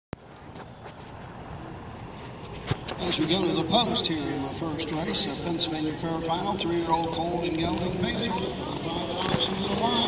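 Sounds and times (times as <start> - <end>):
low vehicle-like drone: 0.2 - 10.0
outdoor rumble and hiss: 0.2 - 10.0.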